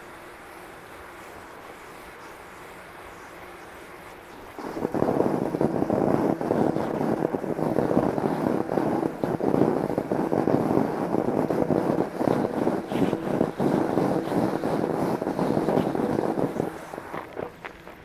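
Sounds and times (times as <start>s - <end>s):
bike tyres crunching over snow: 0.0s - 18.0s.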